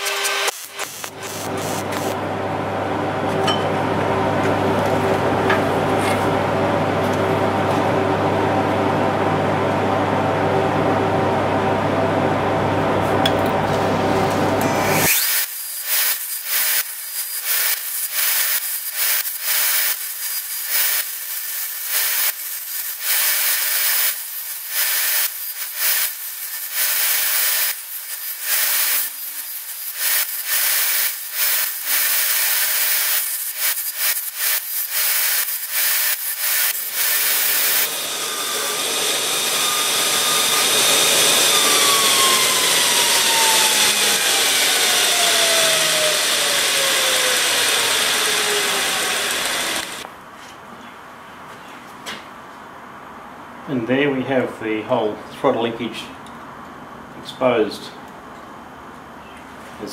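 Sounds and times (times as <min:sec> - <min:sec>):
belt sander grinding metal: 0:00.0 - 0:02.2, 0:14.6 - 0:50.0.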